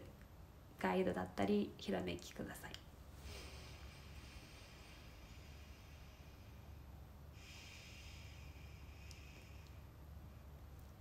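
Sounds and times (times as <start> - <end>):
low room hum: 0.0 - 11.0
soft breath through the nose: 3.1 - 10.3.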